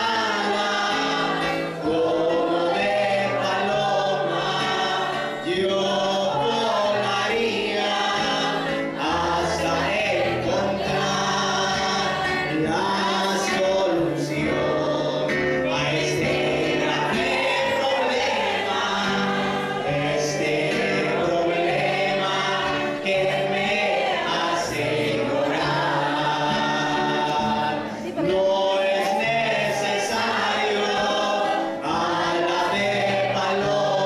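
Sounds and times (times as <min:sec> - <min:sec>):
congregation singing a hymn: 0:00.0 - 0:34.0.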